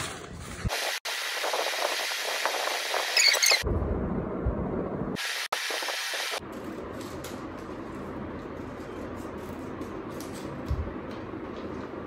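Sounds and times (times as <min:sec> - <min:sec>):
steady hiss: 0:00.6 - 0:03.2.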